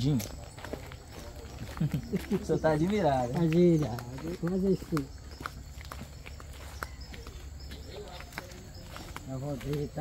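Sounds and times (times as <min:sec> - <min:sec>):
footsteps on ground: 0:00.0 - 0:10.0.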